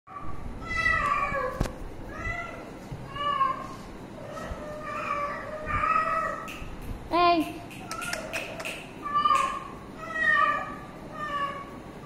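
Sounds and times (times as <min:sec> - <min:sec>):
cat meowing: 0:00.6 - 0:06.5, 0:07.9 - 0:11.8
sharp click: 0:06.4 - 0:09.6.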